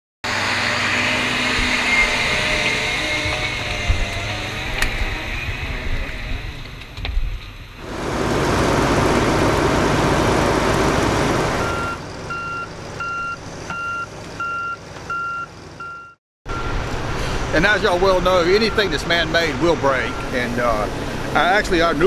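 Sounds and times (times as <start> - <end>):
heavy machinery engine running: 0.2 - 15.9, 16.5 - 22.0
backup alarm beeping: 11.6 - 16.8, 18.3 - 20.6.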